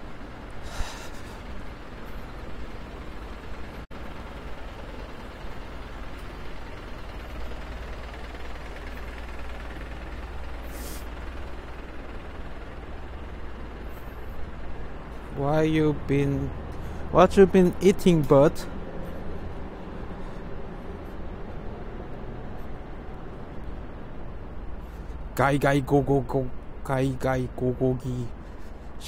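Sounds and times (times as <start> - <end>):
city street traffic rumble: 0.0 - 29.0
short hisses: 0.6 - 1.4, 10.6 - 11.1.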